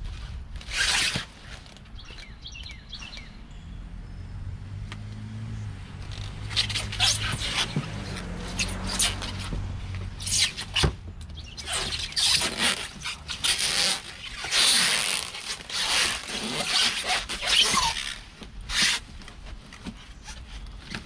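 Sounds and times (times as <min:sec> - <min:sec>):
plastic and foam crinkling: 0:11.5 - 0:21.0.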